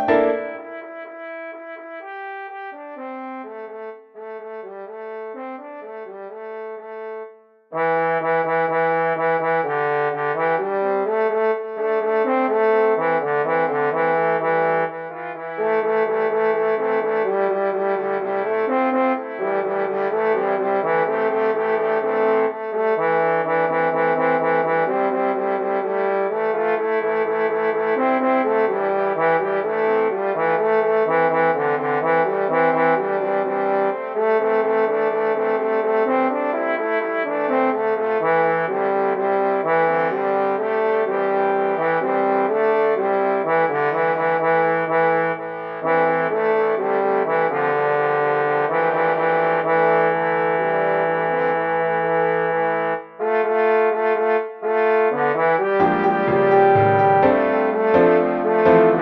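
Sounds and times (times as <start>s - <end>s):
synthesized brass-like chords: 0.0s - 1.3s, 20.8s - 25.5s, 39.6s - 59.0s.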